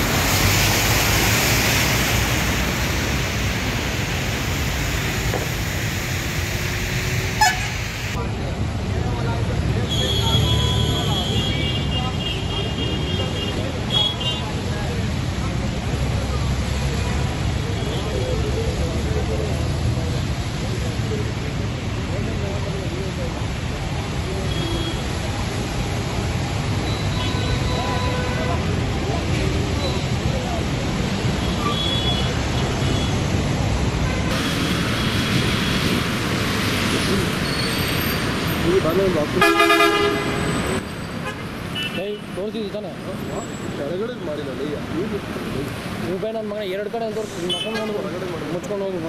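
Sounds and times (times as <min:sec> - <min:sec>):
road traffic rumble: 0:00.0 - 0:49.0.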